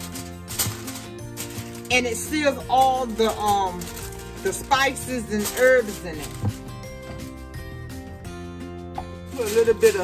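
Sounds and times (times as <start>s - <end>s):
aluminium foil crinkling: 0.0s - 7.3s, 9.2s - 10.0s
background music with sustained tones: 0.0s - 10.0s.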